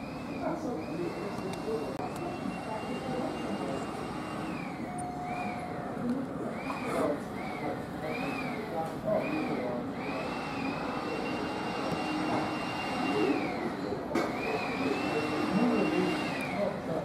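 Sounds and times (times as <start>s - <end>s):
faint voices: 0.1s - 17.0s.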